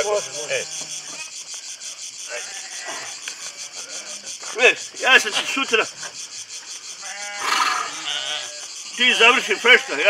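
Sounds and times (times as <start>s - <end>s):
sheep bleating: 7.0s - 10.0s.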